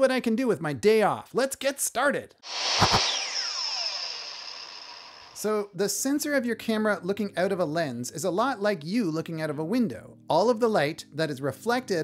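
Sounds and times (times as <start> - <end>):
power drill motor spinning down: 2.5 - 5.5.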